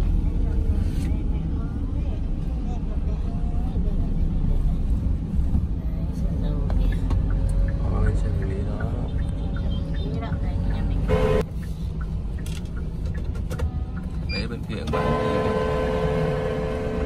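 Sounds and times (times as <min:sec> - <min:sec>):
car road and engine rumble: 0:00.0 - 0:17.0
steady horn-like tone: 0:11.0 - 0:11.4, 0:14.9 - 0:17.0.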